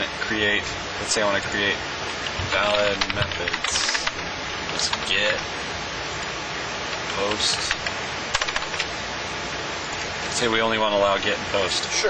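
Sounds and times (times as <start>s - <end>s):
steady background hiss: 0.0s - 12.0s
computer keyboard clicks: 2.2s - 5.4s, 7.0s - 8.9s.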